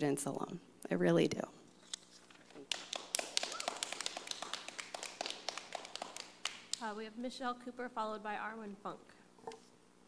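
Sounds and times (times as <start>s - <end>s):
people clapping: 2.6s - 7.0s.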